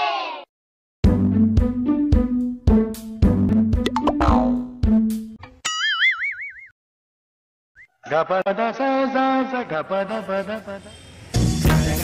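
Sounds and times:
cartoon wobbling sound effect: 3.9s - 4.8s
plucked string note: 3.9s - 4.8s.

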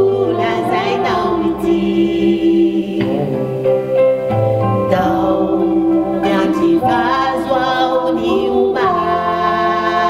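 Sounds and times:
gospel singing in harmony: 0.0s - 10.0s.

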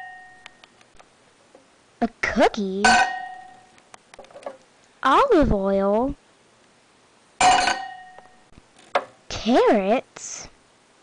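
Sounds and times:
glass bottle clinking in pot: 2.8s - 3.6s, 7.4s - 8.3s.

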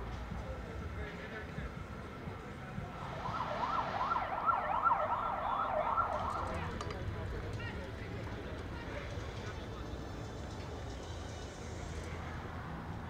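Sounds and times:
distant indistinct voices: 0.0s - 13.0s
siren wailing: 3.1s - 6.6s.

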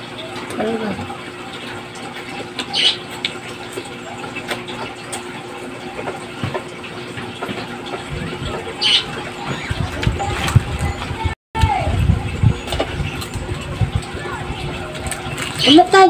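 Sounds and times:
steady background hum: 0.0s - 16.0s
people chewing and smacking: 12.3s - 15.7s.

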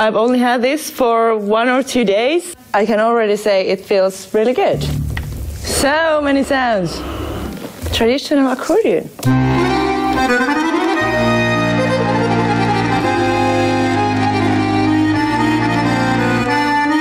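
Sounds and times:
accordion chords over bass notes: 9.2s - 17.0s.

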